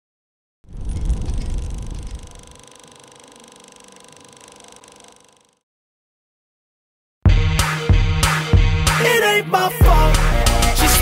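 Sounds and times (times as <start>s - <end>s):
deep boom: 0.7s - 2.4s
whirring tone with mechanical flutter: 0.7s - 5.6s.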